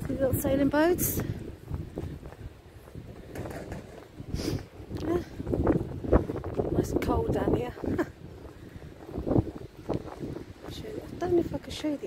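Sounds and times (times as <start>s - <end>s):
wind buffeting microphone: 0.0s - 12.0s
short hiss: 4.3s - 4.7s.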